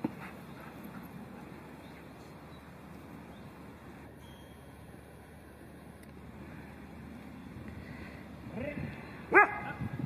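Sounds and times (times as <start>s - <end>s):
dog barking: 9.3s - 9.8s.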